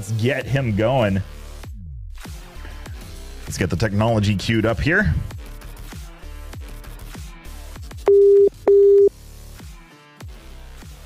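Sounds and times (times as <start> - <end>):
telephone ringback tone: 8.1 - 9.1.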